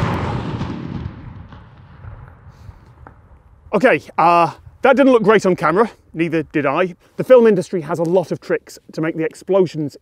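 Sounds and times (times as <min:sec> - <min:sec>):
explosion with rolling rumble: 0:00.0 - 0:04.8.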